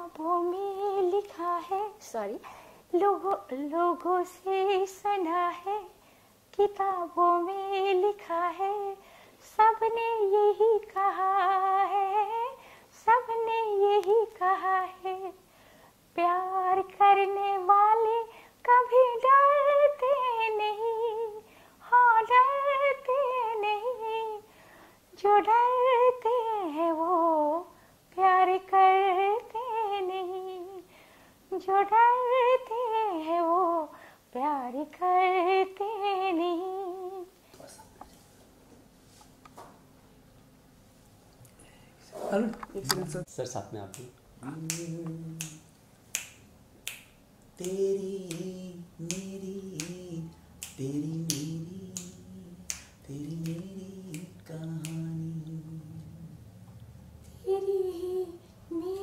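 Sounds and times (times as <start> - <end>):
woman singing unaccompanied: 0.0 - 15.4, 16.1 - 24.5, 25.1 - 30.9, 31.5 - 37.4, 44.4 - 45.7, 47.5 - 56.4, 57.4 - 59.0
person humming: 43.9 - 45.7, 47.6 - 56.4, 57.4 - 59.0
finger snaps: 43.9 - 56.1.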